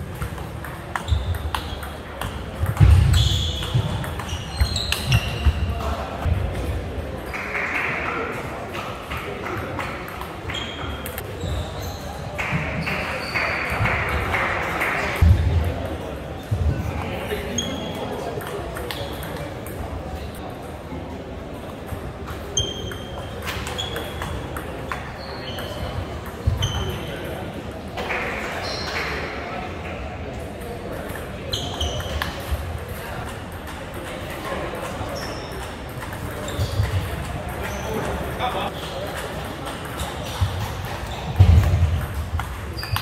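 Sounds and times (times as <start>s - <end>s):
shoe squeaking on floor: 1.0s - 2.0s, 2.7s - 6.0s, 10.5s - 13.7s, 17.3s - 18.0s, 22.5s - 27.2s, 28.6s - 29.1s, 31.5s - 32.6s, 34.9s - 39.0s, 39.9s - 43.0s.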